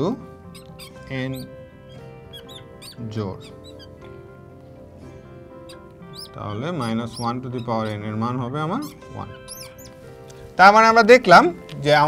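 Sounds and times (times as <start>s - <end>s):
soft music bed: 0.0s - 12.0s
marker squeaking on glass: 0.4s - 4.2s, 5.5s - 10.4s.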